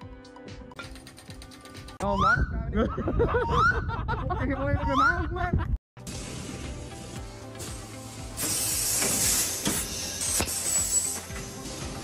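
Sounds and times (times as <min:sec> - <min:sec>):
music: 0:00.0 - 0:02.0, 0:06.0 - 0:12.0.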